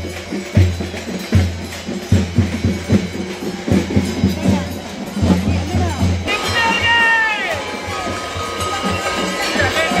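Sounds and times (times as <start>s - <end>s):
drums beaten fast: 0.0s - 10.0s.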